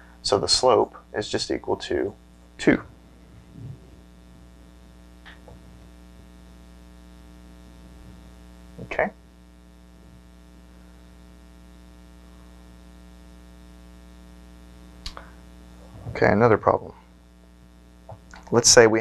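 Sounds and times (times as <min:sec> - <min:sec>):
electrical mains hum: 0:00.0 - 0:19.0.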